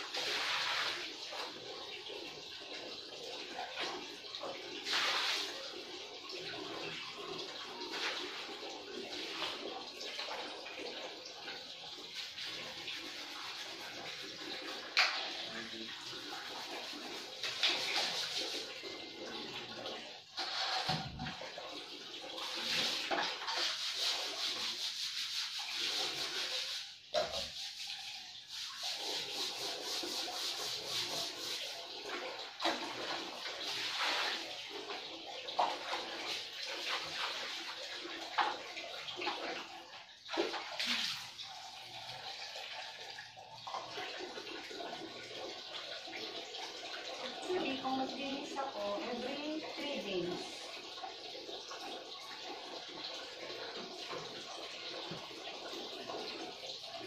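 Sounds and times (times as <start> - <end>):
water: 0.0 - 57.0
hand scrubbing wet tiles: 11.5 - 19.0, 22.4 - 45.6.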